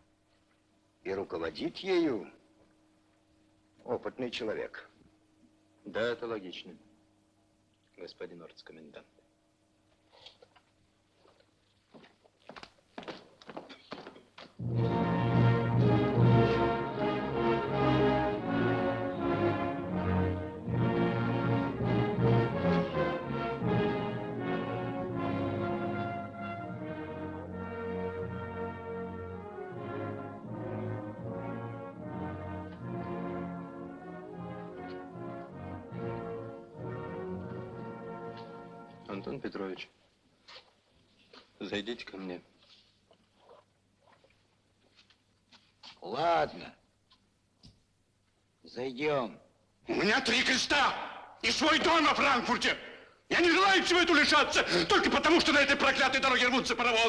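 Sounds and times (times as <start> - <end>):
film score with brass: 14.6 - 39.6.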